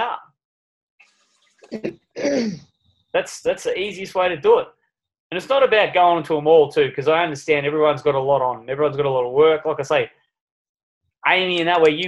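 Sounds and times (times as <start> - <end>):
person coughing: 1.8 - 2.6.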